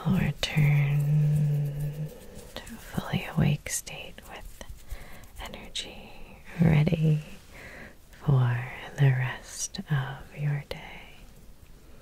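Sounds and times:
woman whispering: 0:00.0 - 0:07.4, 0:08.2 - 0:11.3.

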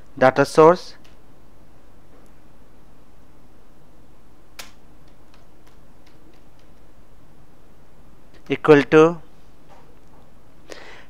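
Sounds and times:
steady low hum: 0:00.0 - 0:11.0
keyboard typing: 0:04.6 - 0:06.9.

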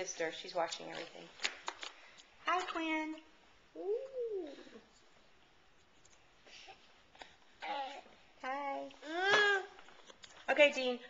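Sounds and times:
baby cooing: 0:07.6 - 0:08.2, 0:09.0 - 0:09.8.

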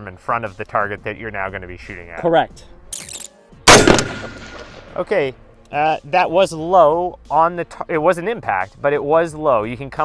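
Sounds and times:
rifle shot with echo: 0:03.7 - 0:05.3.

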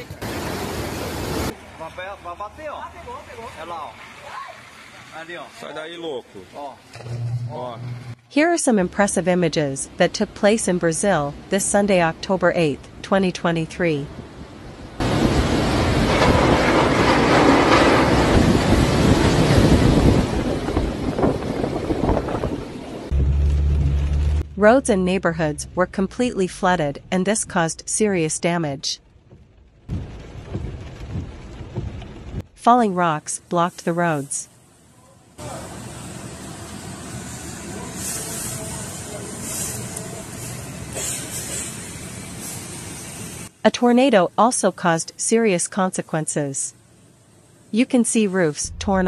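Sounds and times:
heavy rain: 0:00.0 - 0:06.9, 0:14.1 - 0:24.4, 0:29.0 - 0:32.5, 0:35.4 - 0:43.6
cars driving on wet road: 0:00.0 - 0:07.0, 0:15.0 - 0:24.4, 0:29.1 - 0:32.4, 0:35.4 - 0:42.4
bright hiss: 0:35.4 - 0:43.5.

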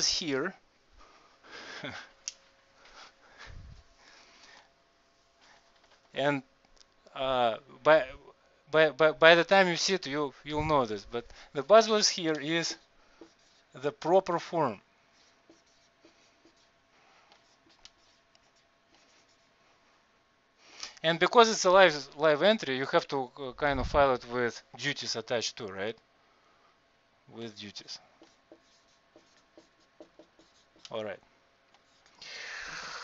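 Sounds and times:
marker squeaking on whiteboard: 0:15.2 - 0:16.7, 0:17.4 - 0:19.4, 0:28.2 - 0:31.0.

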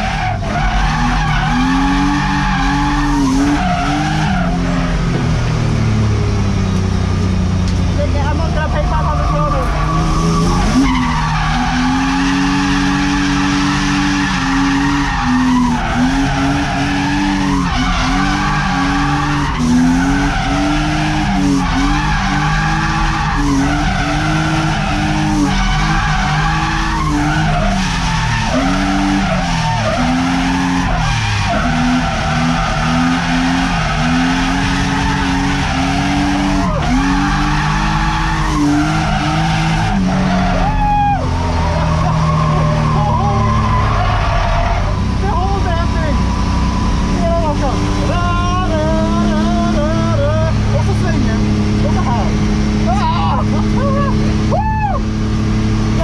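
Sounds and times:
car engine revving: 0:00.0 - 0:56.0
tyres skidding and squealing: 0:00.0 - 0:56.0.

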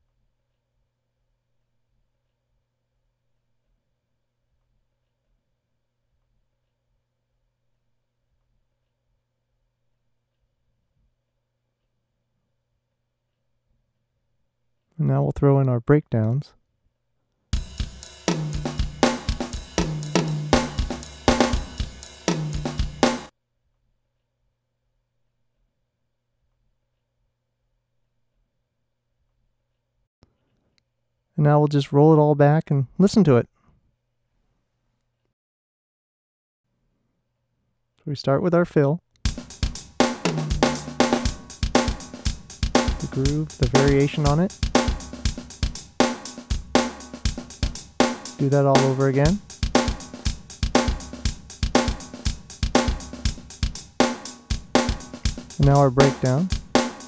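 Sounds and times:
funk drum loop: 0:17.6 - 0:23.3, 0:39.2 - 0:57.0.

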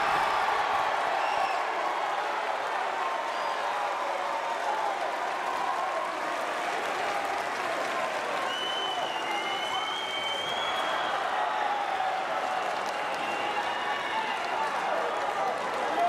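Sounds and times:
crowd applauding and cheering: 0:00.0 - 0:16.0.

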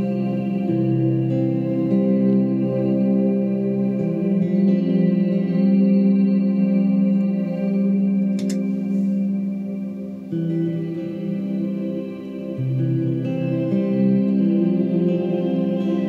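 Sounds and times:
electric guitar chords: 0:00.0 - 0:16.0
short click: 0:08.4 - 0:08.7.

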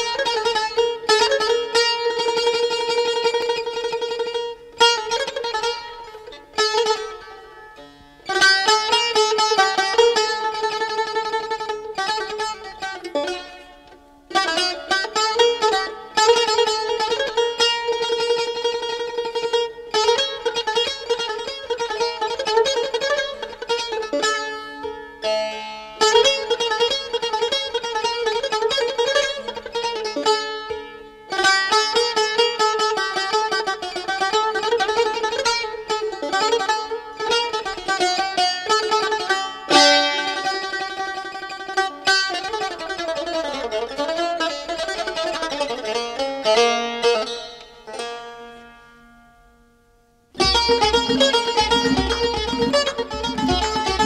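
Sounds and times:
string instrument fast strokes: 0:50.4 - 0:54.0.

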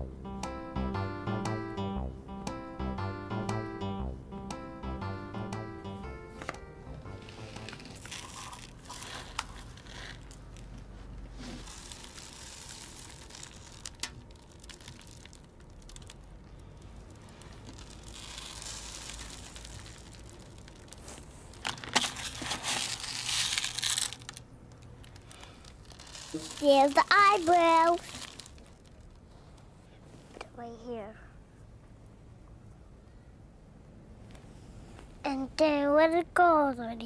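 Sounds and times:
aluminium foil crinkling: 0:07.2 - 0:29.3.

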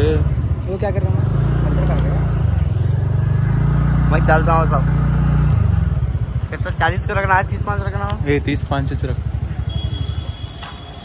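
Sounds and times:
motorbike engine running: 0:00.0 - 0:11.0.

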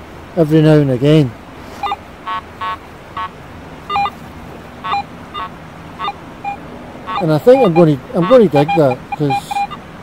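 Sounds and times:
metal detector beeps: 0:01.8 - 0:02.0, 0:03.9 - 0:04.2, 0:04.8 - 0:09.8.

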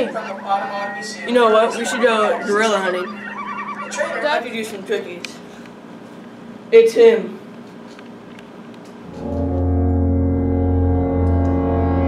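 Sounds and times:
deep low brass note: 0:09.1 - 0:12.0.

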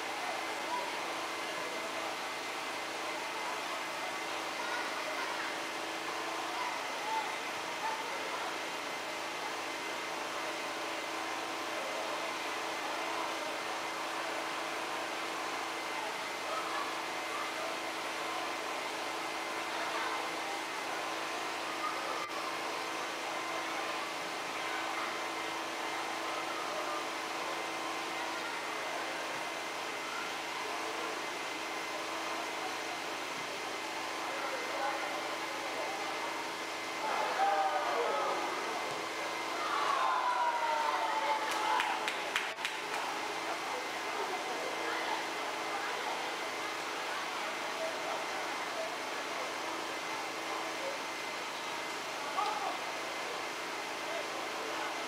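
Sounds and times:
murmur of voices: 0:00.0 - 0:55.0.

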